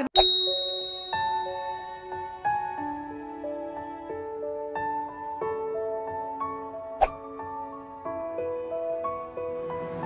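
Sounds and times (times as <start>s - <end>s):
bright chime ringing: 0.0s - 2.5s
soft bell-like outro music: 0.2s - 3.2s.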